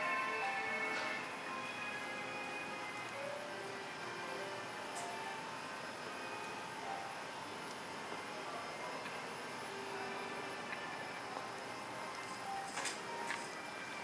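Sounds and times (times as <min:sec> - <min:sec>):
background hiss: 0:00.0 - 0:14.0
faint music with held notes: 0:00.0 - 0:14.0.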